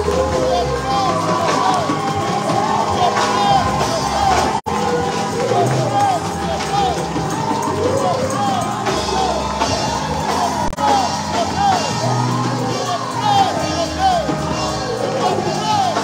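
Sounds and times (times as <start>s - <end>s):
electronic keyboard chords: 0.0s - 16.0s
many voices crying out: 0.0s - 16.0s
people singing: 0.0s - 16.0s.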